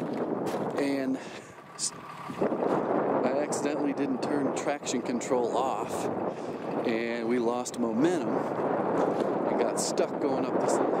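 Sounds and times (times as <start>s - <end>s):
vehicle running: 0.0s - 7.4s
wind on microphone: 0.0s - 11.0s.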